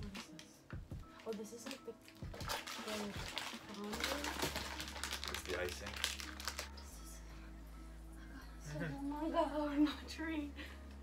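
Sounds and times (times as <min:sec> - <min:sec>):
plastic packaging crinkling: 0:01.1 - 0:06.8.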